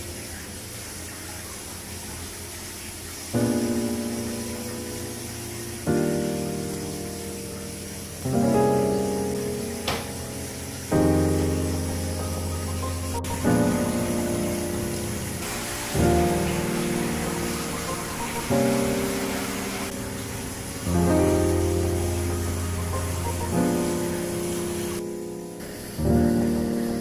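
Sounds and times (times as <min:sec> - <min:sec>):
slow piano chords: 0:00.0 - 0:27.0
soft hiss: 0:00.0 - 0:27.0.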